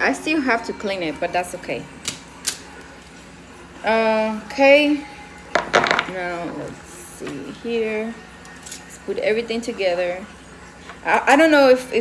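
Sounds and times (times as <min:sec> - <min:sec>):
plates being handled: 0:05.5 - 0:06.2.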